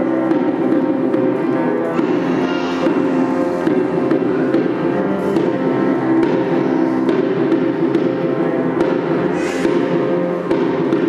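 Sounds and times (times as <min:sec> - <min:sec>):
cello: 0:00.0 - 0:11.0
piano: 0:00.0 - 0:11.0
low drum strokes: 0:00.3 - 0:11.0.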